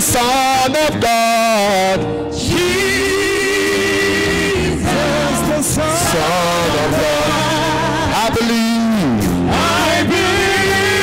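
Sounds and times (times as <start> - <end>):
church worship singing: 0.0 - 11.0
musical accompaniment: 0.0 - 11.0.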